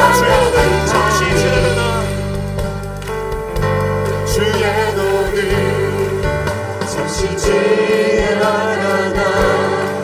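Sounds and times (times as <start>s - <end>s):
choir singing worship song: 0.0s - 2.4s, 4.2s - 10.0s
instrumental accompaniment: 0.0s - 10.0s.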